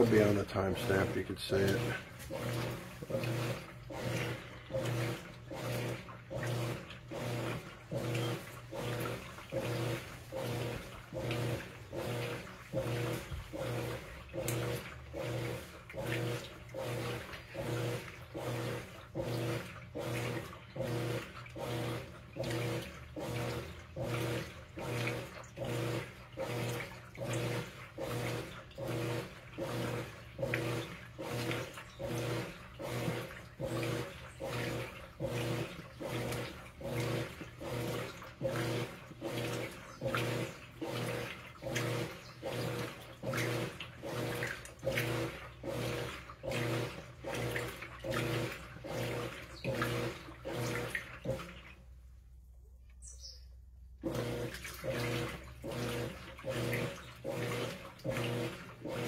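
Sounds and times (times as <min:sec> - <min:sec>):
water sloshing: 0:00.0 - 0:53.3, 0:54.0 - 0:59.0
washer motor humming: 0:00.0 - 0:59.0.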